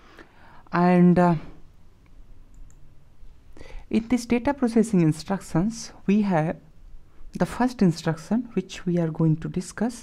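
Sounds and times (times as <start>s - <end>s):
low steady hum: 0.0s - 10.0s
faint clicks: 2.0s - 2.8s.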